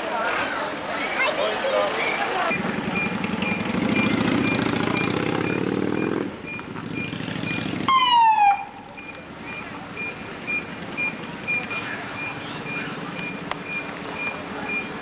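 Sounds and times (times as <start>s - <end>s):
heavy vehicle engine running: 1.9s - 15.0s
faint high beeps: 2.5s - 15.0s
fire engine siren whoop: 7.9s - 8.8s.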